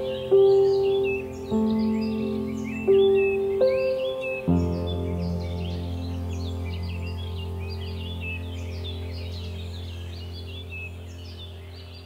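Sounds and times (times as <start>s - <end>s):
ambient music low chord: 0.0s - 12.0s
birds chirping: 0.0s - 12.0s.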